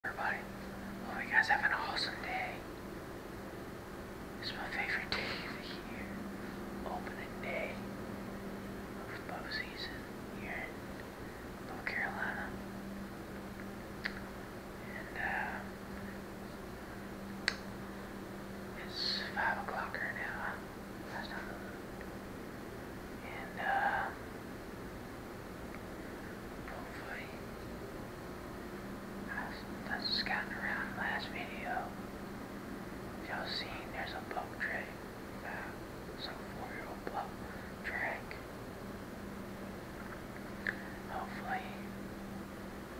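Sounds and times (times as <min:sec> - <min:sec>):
man whispering: 0:00.0 - 0:02.7, 0:04.4 - 0:07.9, 0:09.0 - 0:10.8, 0:11.7 - 0:12.6, 0:14.8 - 0:15.8, 0:18.8 - 0:21.8, 0:23.2 - 0:24.2, 0:26.6 - 0:27.5, 0:29.3 - 0:31.9, 0:33.2 - 0:38.4, 0:40.8 - 0:41.9
steady low hum: 0:00.0 - 0:42.9.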